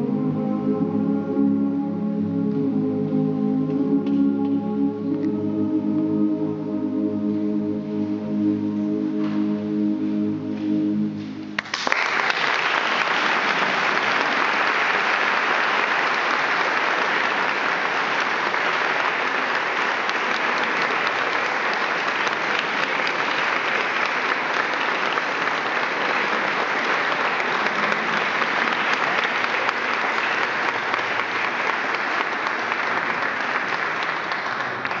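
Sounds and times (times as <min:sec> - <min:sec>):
men's choir singing chord: 0:00.0 - 0:11.2
audience applause: 0:11.6 - 0:35.0.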